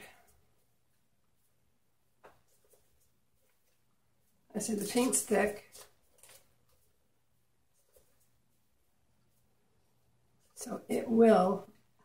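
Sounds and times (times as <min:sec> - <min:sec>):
faint soft noises: 0:00.0 - 0:12.0.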